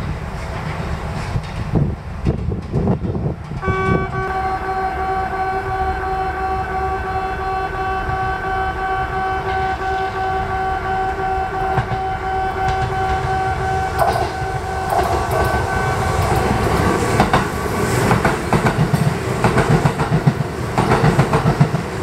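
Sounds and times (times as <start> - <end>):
train rumble and wheel clatter: 0.0 - 22.0
level crossing alarm ringing: 3.7 - 17.0.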